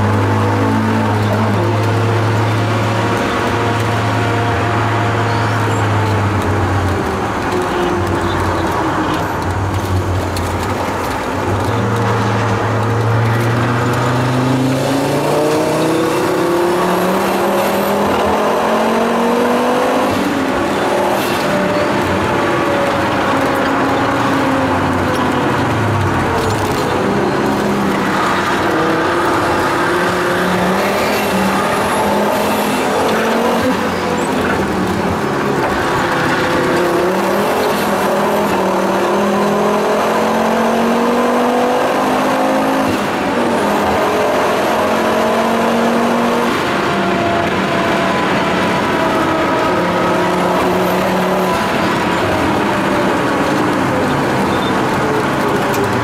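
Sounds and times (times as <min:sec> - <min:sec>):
road and wind noise in cabin: 0:00.0 - 0:56.0
turbocharged car engine revving: 0:00.0 - 0:56.0.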